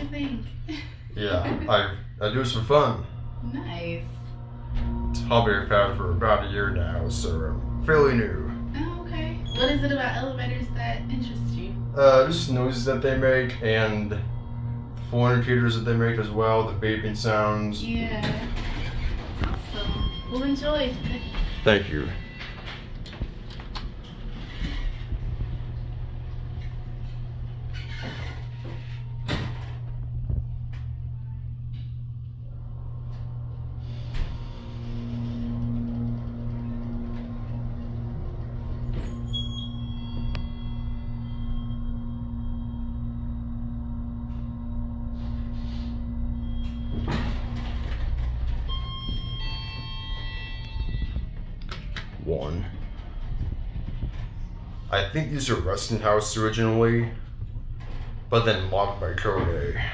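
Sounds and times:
elevator hum: 0.0s - 59.9s
elevator whine: 0.0s - 59.9s
elevator door noise: 1.2s - 59.9s
high electronic beeps: 5.1s - 13.9s, 19.4s - 22.7s, 48.5s - 51.4s.

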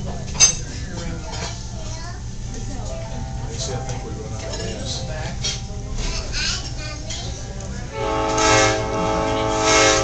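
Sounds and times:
train horn blast: 7.9s - 10.0s.

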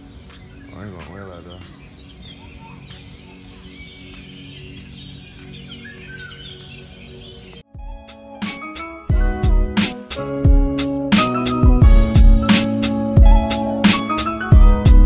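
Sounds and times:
bird chirps and tweets: 0.0s - 7.6s
low background music: 0.0s - 15.0s.

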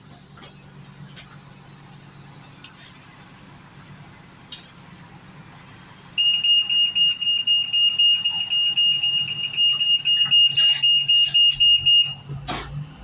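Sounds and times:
bus door warning buzzer: 6.2s - 12.2s.

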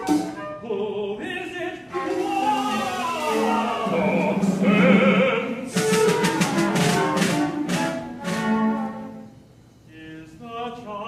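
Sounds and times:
small instrumental ensemble playing: 0.0s - 0.9s, 1.8s - 9.9s.

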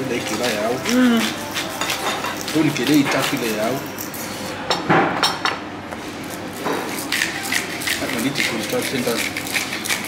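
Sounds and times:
spice grinder crackles: 6.3s - 10.0s.

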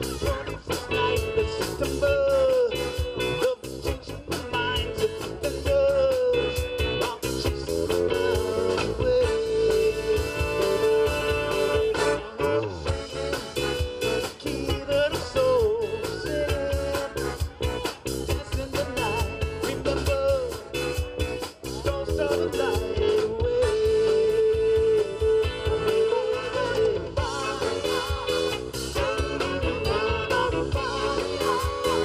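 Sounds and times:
electric guitars: 0.0s - 32.0s
keyboard: 0.0s - 32.0s
saxophone: 0.0s - 32.0s.

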